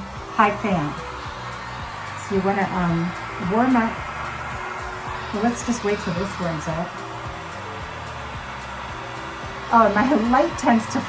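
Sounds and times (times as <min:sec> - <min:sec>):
heat gun blowing air: 0:00.0 - 0:11.0
low motor hum: 0:00.0 - 0:11.0.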